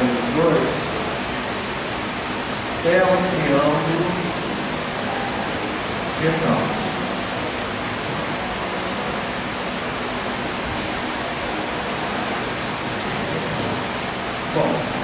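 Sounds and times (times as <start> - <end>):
room background hiss: 0.0 - 15.0
man talking: 14.5 - 15.0.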